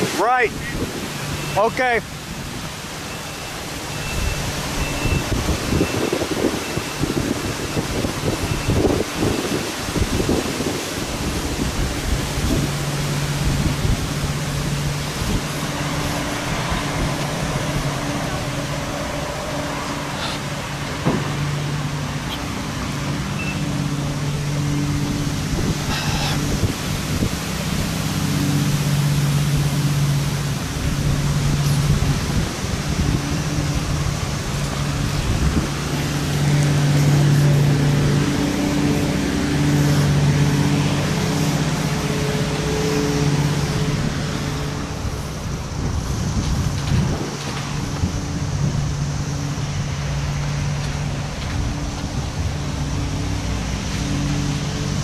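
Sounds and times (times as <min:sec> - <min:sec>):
low rumbling buffets: 0:00.0 - 0:55.0
road and wind noise: 0:00.0 - 0:55.0
vehicle engine running: 0:00.0 - 0:55.0.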